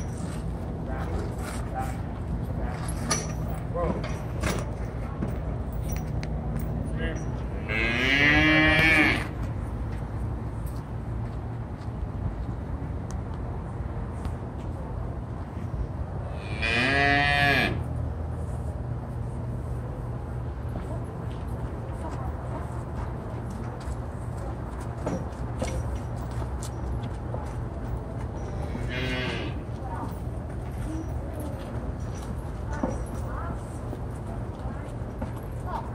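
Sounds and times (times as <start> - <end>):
cow mooing: 7.6 - 9.3, 16.4 - 17.8, 28.8 - 29.6.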